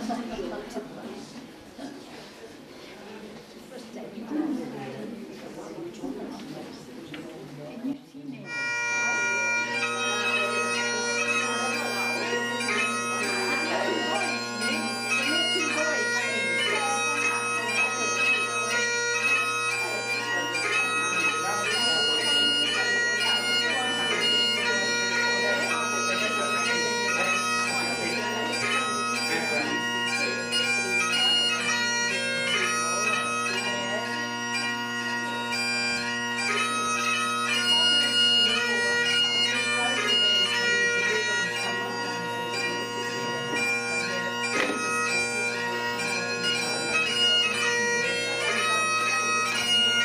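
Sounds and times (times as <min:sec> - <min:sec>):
bagpipe music with drones: 0:08.4 - 0:50.0.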